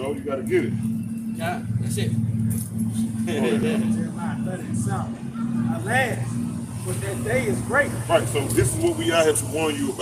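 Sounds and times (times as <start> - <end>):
motor running drone: 0.0 - 10.0
faint voices: 3.4 - 10.0.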